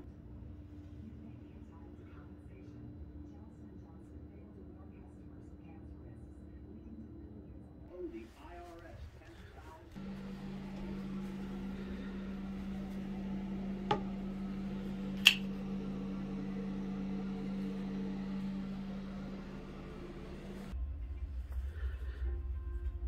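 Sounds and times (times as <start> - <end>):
exhaust fan motor hum: 0.0 - 23.0
folding knife blade snapping: 15.2 - 15.4.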